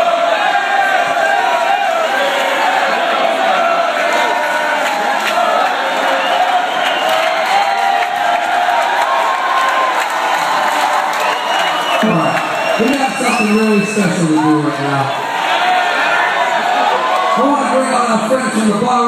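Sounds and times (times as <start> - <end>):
concert crowd cheering: 0.0 - 19.0.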